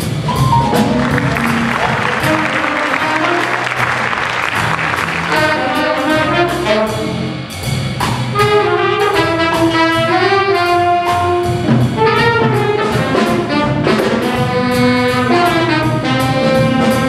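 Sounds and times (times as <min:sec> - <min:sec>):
jazz big band playing: 0:00.0 - 0:17.0
upright bass: 0:00.0 - 0:17.0
drum and cymbal strokes: 0:05.0 - 0:17.0.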